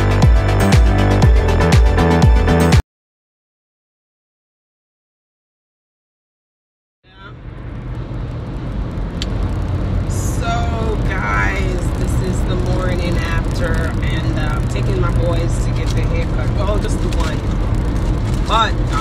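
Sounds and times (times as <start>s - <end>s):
car cabin rumble: 7.1s - 19.0s
person talking: 10.1s - 17.4s, 18.4s - 19.0s.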